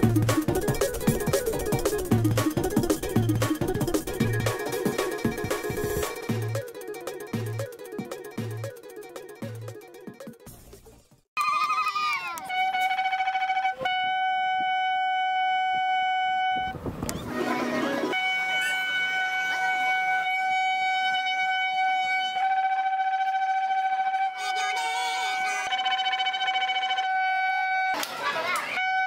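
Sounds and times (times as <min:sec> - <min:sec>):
shofar blasts: 0:12.4 - 0:16.8, 0:17.4 - 0:28.1, 0:28.8 - 0:29.0.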